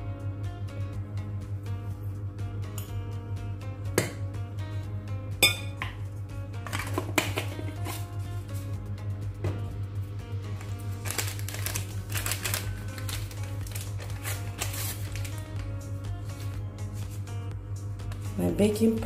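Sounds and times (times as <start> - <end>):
background music: 0.0 - 19.0
spoon clinking against glass bowl: 5.4 - 5.9.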